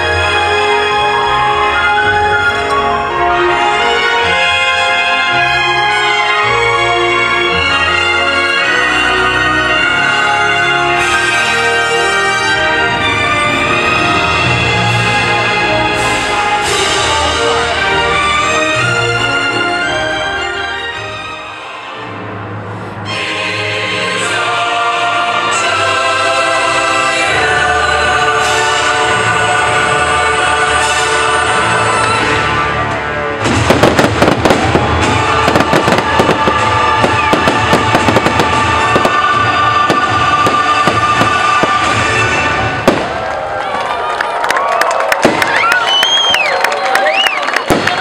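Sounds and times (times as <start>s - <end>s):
show music: 0.0s - 48.0s
fireworks bangs and crackles: 33.4s - 43.8s, 45.0s - 46.0s, 47.5s - 48.0s.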